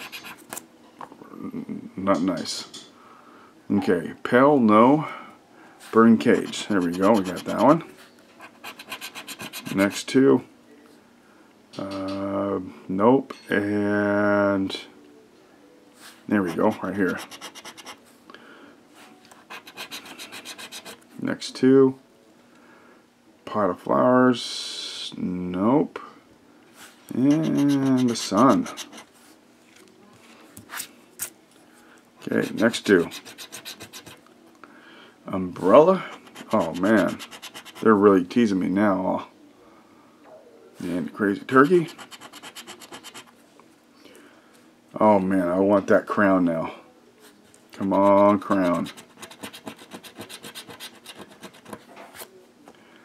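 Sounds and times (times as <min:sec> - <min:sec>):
lottery ticket being scratched: 0:00.0 - 0:00.6, 0:06.2 - 0:07.8, 0:08.4 - 0:10.1, 0:16.4 - 0:18.0, 0:19.4 - 0:21.0, 0:27.2 - 0:29.1, 0:32.3 - 0:34.2, 0:35.7 - 0:38.0, 0:41.7 - 0:43.3, 0:47.8 - 0:51.9.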